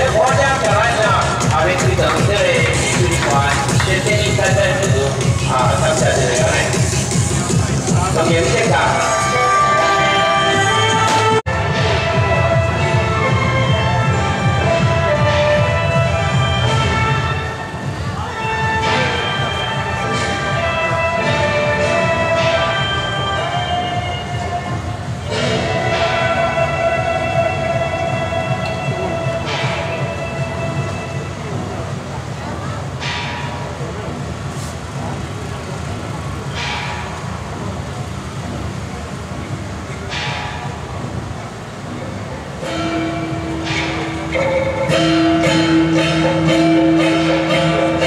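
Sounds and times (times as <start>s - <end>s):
procession music: 0.0s - 31.6s, 42.6s - 48.0s
crowd noise: 0.0s - 48.0s
shrill wind instrument: 4.3s - 31.5s, 42.6s - 48.0s.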